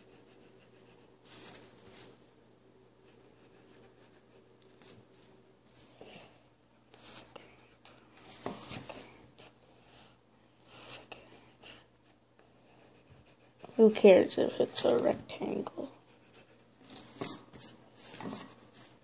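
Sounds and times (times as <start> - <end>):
pencil scratching on paper: 0.0 - 2.1, 3.0 - 5.9, 6.9 - 9.6, 10.6 - 19.0.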